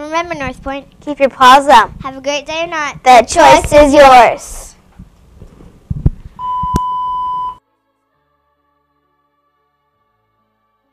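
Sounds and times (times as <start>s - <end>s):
steady electronic beep: 6.4s - 7.6s.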